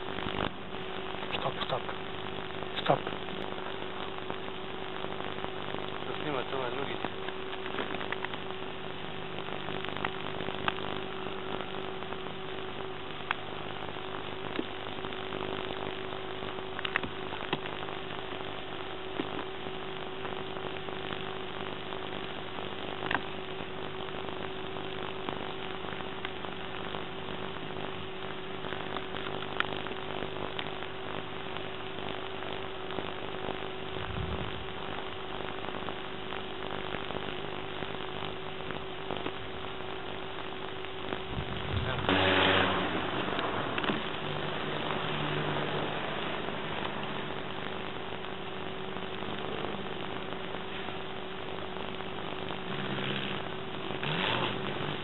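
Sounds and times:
electrical hum with hiss: 0.0 - 55.0.

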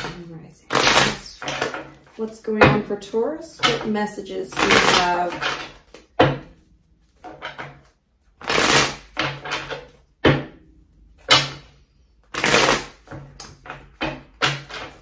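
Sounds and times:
cards being shuffled: 4.5 - 6.1, 7.1 - 9.8, 12.3 - 13.9.

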